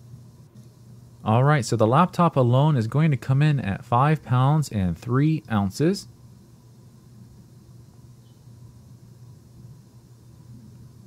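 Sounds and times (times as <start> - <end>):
light hiss: 5.4 - 11.0.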